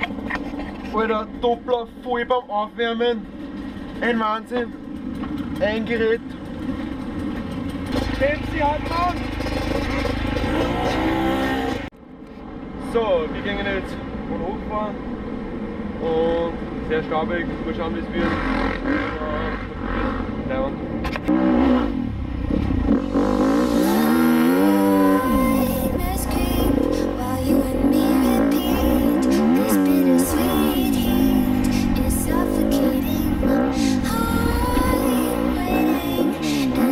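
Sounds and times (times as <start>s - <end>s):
motorcycle engines idling: 0.0s - 21.3s, 21.9s - 36.9s
background music: 23.6s - 36.9s.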